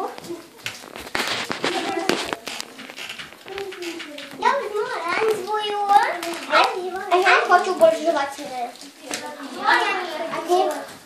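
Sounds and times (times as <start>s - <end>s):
children's voices: 0.0s - 11.0s
close rustling: 0.0s - 11.0s.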